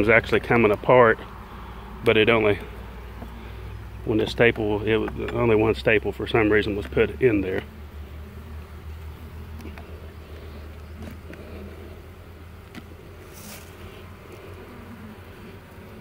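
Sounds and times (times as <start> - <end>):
bees buzzing: 0.0 - 16.0.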